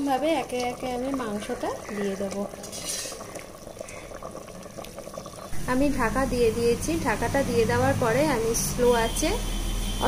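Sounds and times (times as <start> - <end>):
curry bubbling in pot: 0.0 - 10.0.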